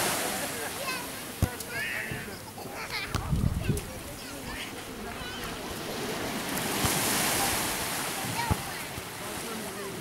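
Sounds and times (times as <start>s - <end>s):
small waves washing onto beach: 0.0s - 10.0s.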